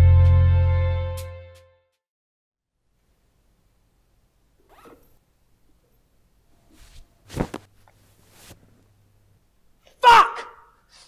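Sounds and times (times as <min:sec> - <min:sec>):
bag zip pulled open: 0:04.6 - 0:05.2.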